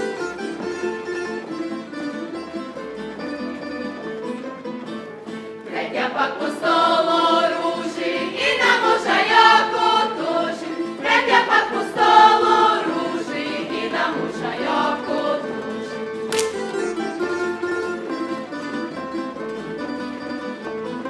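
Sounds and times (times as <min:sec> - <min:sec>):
plucked string instruments: 0:00.0 - 0:21.0
group singing folk song in unison: 0:05.3 - 0:17.0.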